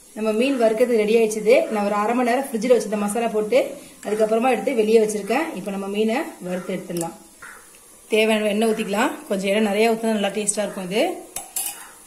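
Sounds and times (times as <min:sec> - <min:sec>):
hot oil hissing: 0:00.0 - 0:12.0
woman's voice: 0:00.2 - 0:07.2, 0:08.1 - 0:11.3
utensil clinking on iron pan: 0:11.4 - 0:11.9.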